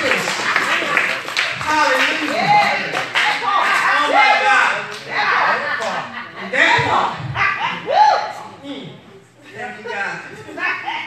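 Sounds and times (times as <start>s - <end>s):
person speaking loudly: 1.6s - 5.8s.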